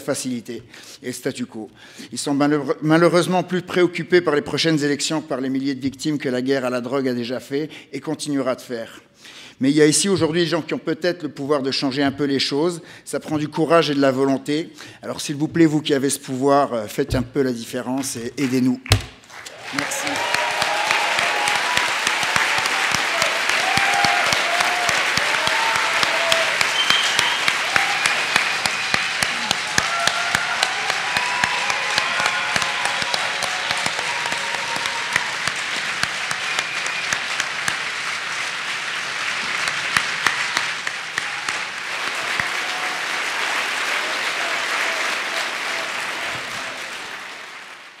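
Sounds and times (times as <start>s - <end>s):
large audience applauding: 18.4s - 48.0s
people calling out and cheering: 19.5s - 37.4s.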